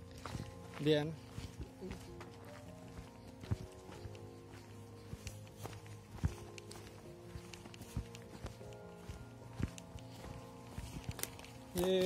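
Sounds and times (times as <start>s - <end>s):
footsteps on twigs: 0.0s - 12.0s
soft background music: 0.0s - 12.0s.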